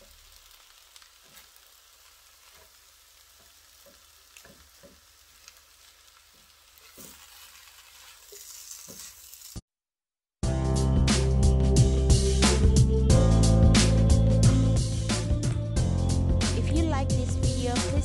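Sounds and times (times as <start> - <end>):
rice sizzling in a wok: 0.0 - 9.7
spatula tapping and scraping pan: 3.4 - 5.2.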